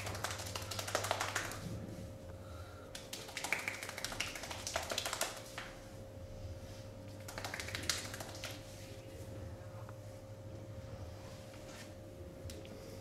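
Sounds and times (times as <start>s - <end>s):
hands tapping on bare arm: 0.0s - 1.6s, 3.0s - 5.7s.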